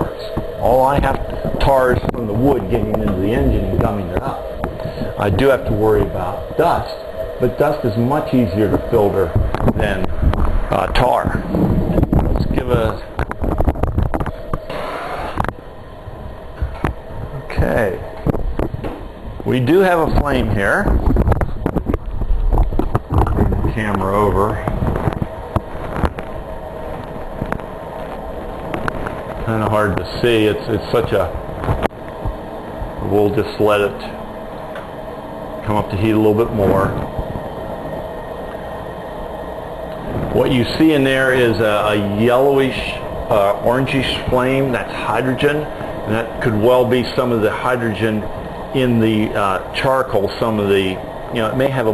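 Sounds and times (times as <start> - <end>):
fan humming: 0.0 - 51.9
gas torch hissing: 0.0 - 51.9.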